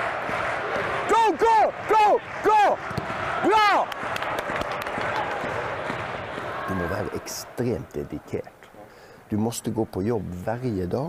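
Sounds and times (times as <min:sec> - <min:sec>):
stadium background noise: 0:00.0 - 0:11.0
man shouting: 0:01.1 - 0:02.8, 0:03.4 - 0:03.8.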